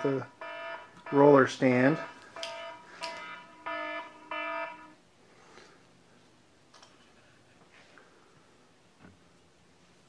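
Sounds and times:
electronic beeps: 0.0s - 4.9s.

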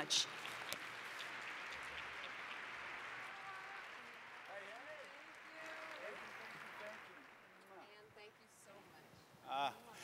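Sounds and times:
audience applauding: 0.0s - 8.0s.

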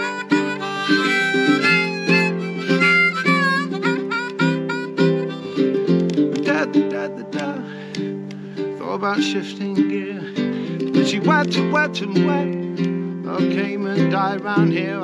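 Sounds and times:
harmonica melody: 0.0s - 15.0s
strummed ukulele chords: 0.0s - 15.0s.

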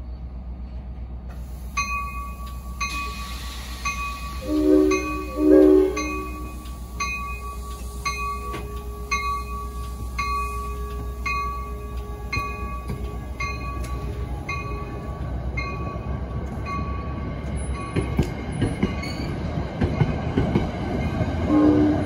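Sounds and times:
train rumble: 0.0s - 22.0s
crossing bell ringing: 1.8s - 20.3s
train horn blasts: 4.4s - 6.6s, 21.5s - 22.0s.

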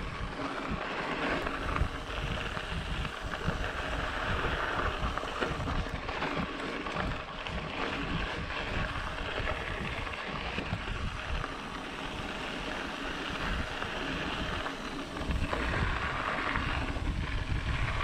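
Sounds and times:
bike tyres rushing over dirt: 0.0s - 18.0s
wind buffeting microphone: 0.0s - 18.0s.

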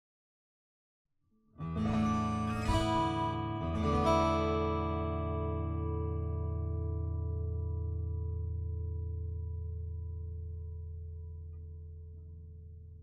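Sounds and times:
strummed guitar chords: 1.6s - 13.0s.

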